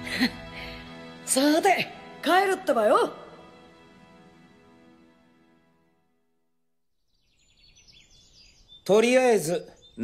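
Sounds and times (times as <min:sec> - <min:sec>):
faint bird chirps: 0:07.0 - 0:10.0.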